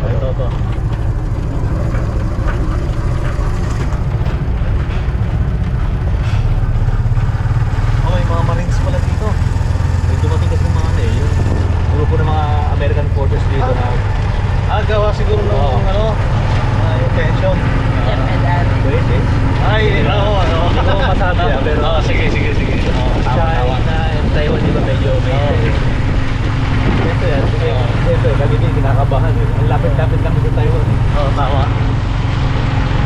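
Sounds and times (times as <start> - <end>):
people talking: 0.0 - 0.7, 8.0 - 9.4, 10.0 - 31.8
motorcycle engine humming: 0.0 - 33.0.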